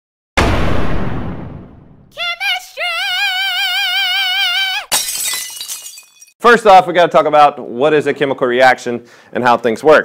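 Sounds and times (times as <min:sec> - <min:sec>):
glass shattering: 0:04.9 - 0:06.4.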